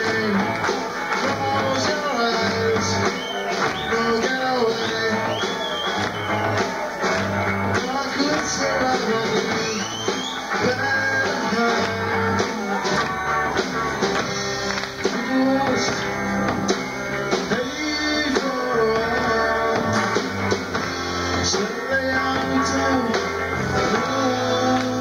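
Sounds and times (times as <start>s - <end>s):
bass line: 0.0s - 25.0s
drum kit: 0.0s - 25.0s.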